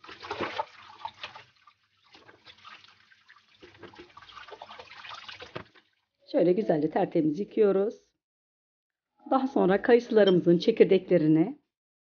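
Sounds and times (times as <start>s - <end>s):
tap water running: 0.0s - 6.1s
water splashing and trickling: 0.0s - 6.2s.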